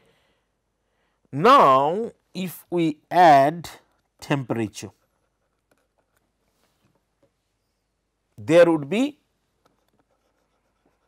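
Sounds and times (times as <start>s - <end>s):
stylus scratching on pen tablet: 4.8s - 6.3s, 9.6s - 11.0s.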